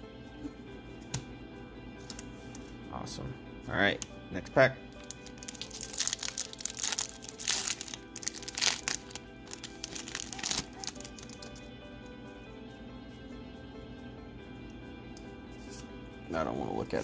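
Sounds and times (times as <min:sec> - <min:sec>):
background music: 0:00.0 - 0:17.0
foil wrapper crinkling: 0:05.0 - 0:11.6.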